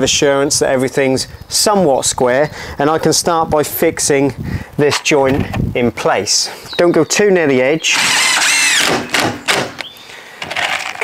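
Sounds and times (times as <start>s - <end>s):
cordless drill motor whine: 7.9s - 9.9s
drill clicks: 7.9s - 11.0s.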